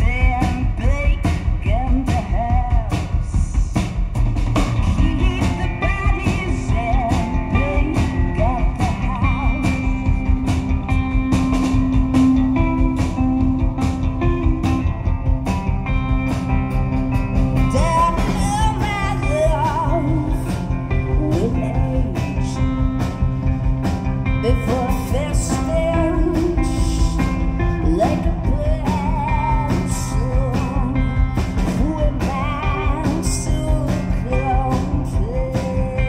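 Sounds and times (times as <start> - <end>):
woman singing: 0.0 - 3.9, 4.8 - 10.4, 17.6 - 22.9, 24.3 - 36.0
drum beat: 0.0 - 30.5
electric guitar: 0.0 - 36.0.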